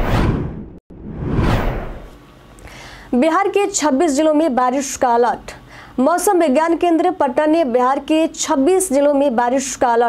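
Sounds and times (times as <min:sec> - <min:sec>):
whoosh transition effects: 0:00.0 - 0:02.2.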